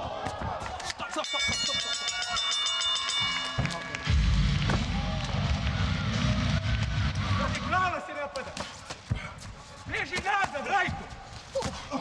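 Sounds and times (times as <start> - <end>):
people shouting: 0.0 - 1.6.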